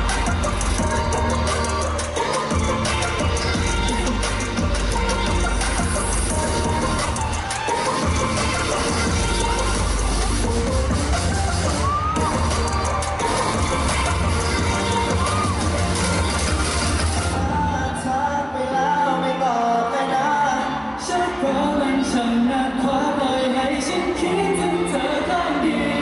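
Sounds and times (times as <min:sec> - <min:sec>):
live pop dance music: 0:00.0 - 0:26.0
crowd cheering: 0:10.7 - 0:17.5.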